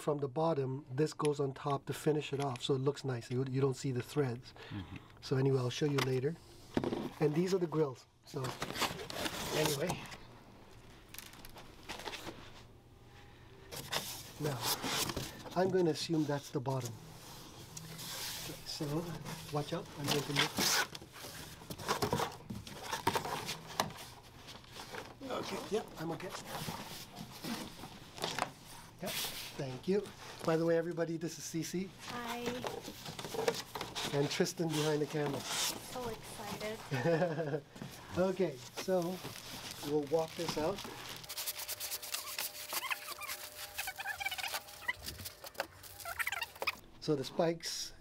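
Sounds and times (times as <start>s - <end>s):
cardboard rubbing and scraping: 38.9s - 46.5s
plastic bag crinkling: 38.9s - 46.8s
short squeaks: 42.1s - 45.2s.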